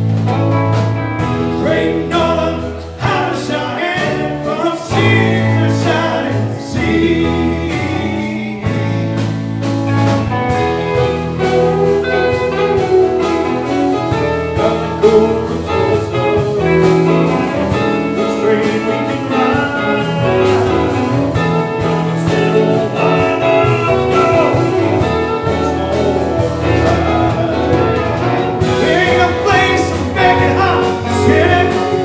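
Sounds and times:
drum kit beat: 0.0 - 32.0
live band playing: 0.0 - 32.0.

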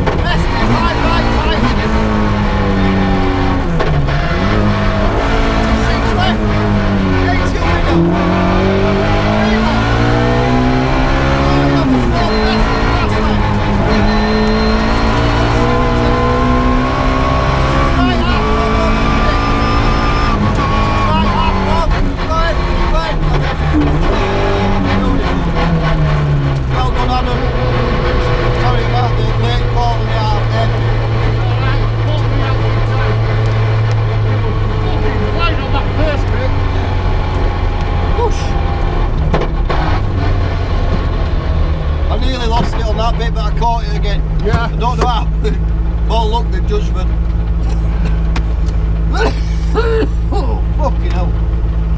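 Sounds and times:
rally car engine revving: 0.0 - 51.9.

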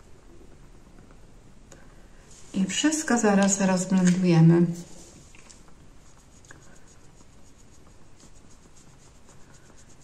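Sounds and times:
soft makeup brush strokes: 1.8 - 10.0.

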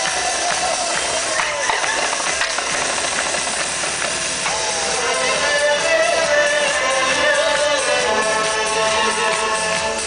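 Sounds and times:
marching snare drum: 0.0 - 4.3
loud backing music: 0.0 - 10.0.

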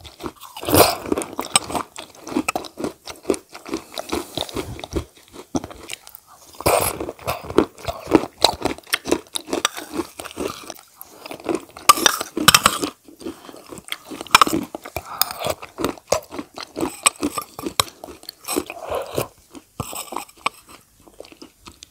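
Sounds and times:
person chewing crunchy food: 0.0 - 21.9.

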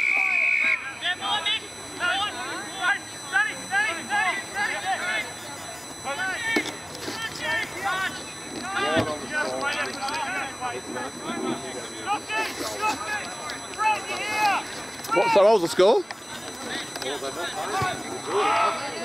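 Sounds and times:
voices shouting and calling out: 0.0 - 19.0.

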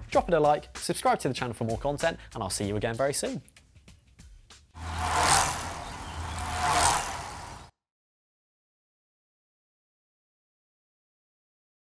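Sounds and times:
rushing whoosh: 4.8 - 7.7.

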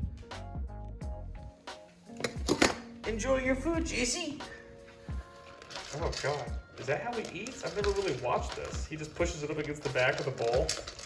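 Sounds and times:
background music: 0.0 - 11.0
metal bowl clattering: 5.6 - 11.0.

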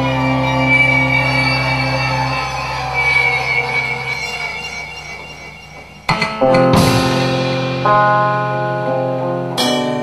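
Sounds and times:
squealing screeching tones: 0.0 - 6.7
low drone: 0.0 - 8.1.

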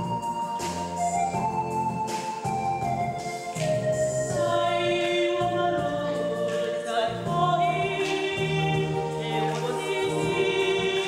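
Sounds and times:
electronic keyboard chords: 0.0 - 11.0
woman singing gospel: 4.3 - 11.0.

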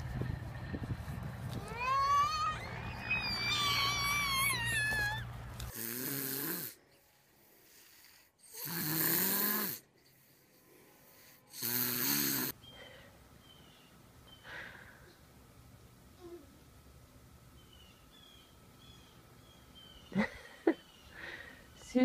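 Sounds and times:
high squeaky chirping: 1.6 - 5.4
child snoring loudly: 5.7 - 6.8, 7.8 - 9.9, 11.5 - 12.6.

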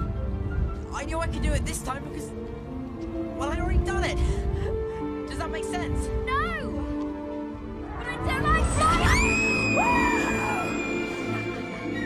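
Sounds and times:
orchestral film score: 0.0 - 12.0
creature cry rising and falling: 8.6 - 12.0.

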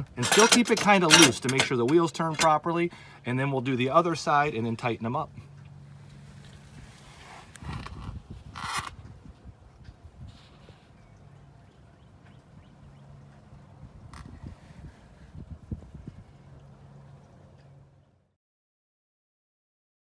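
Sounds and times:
hands scraping and knocking parts: 0.0 - 2.6
low steady hum: 0.0 - 18.4.

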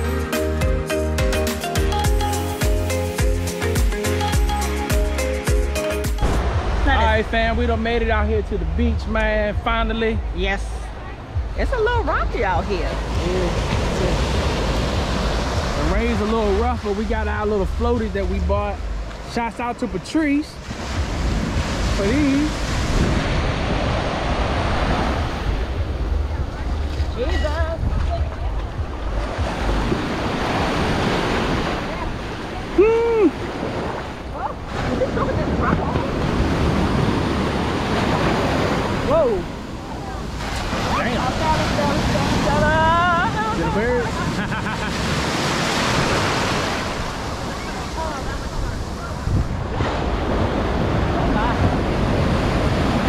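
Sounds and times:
ocean surf breaking: 1.4 - 53.0
wind buffeting microphone: 20.6 - 44.5, 45.1 - 53.0.

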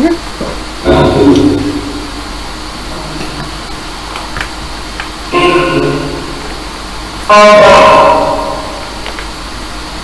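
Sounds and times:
static hiss: 0.0 - 10.0.

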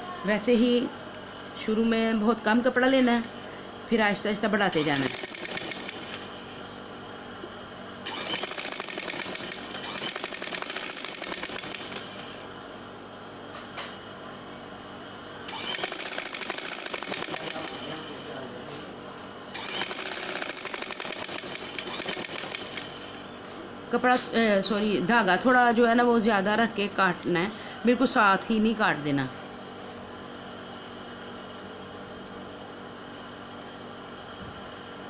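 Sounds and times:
sewing machine stitching: 4.8 - 6.3, 8.1 - 12.2, 15.5 - 18.1, 19.6 - 23.1.

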